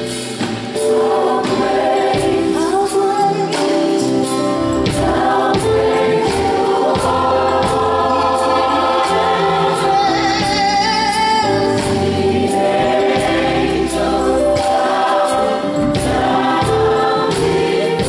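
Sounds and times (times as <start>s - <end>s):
drums beating: 0.0s - 2.9s, 4.6s - 18.0s
gospel choir singing: 0.0s - 18.0s
live band: 0.0s - 18.0s
soloist singing into microphone: 2.4s - 4.2s, 6.4s - 12.7s.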